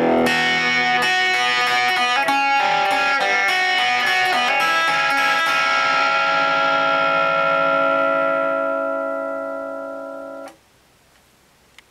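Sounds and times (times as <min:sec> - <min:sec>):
electric guitar chord ringing: 0:00.0 - 0:10.6.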